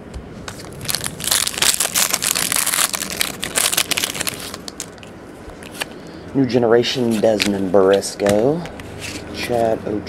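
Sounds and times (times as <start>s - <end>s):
foil wrapper tearing and crinkling: 0.5s - 5.1s.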